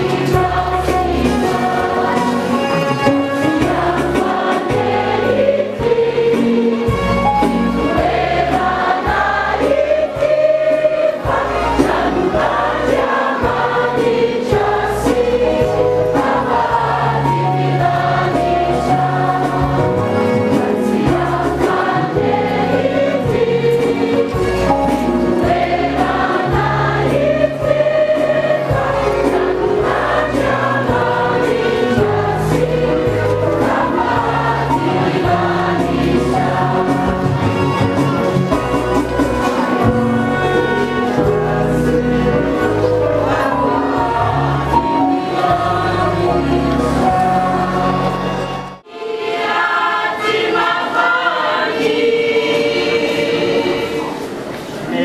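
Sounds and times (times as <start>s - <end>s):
instrumental accompaniment: 0.0s - 54.9s
choir singing: 0.0s - 55.0s.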